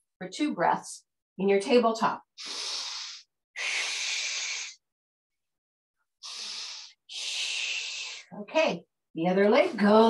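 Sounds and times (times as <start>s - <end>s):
woman breathing: 2.4s - 4.8s, 6.2s - 8.3s.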